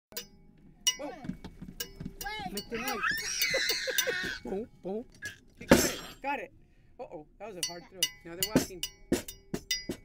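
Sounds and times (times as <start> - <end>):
metallic clinks: 0.1 - 5.4, 7.6 - 10.0
person speaking: 2.2 - 3.3, 4.4 - 8.9.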